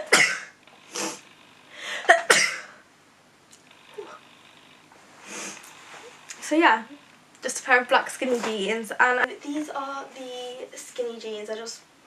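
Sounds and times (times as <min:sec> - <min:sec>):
noisy in-breath: 0:00.8 - 0:02.9, 0:05.2 - 0:06.1.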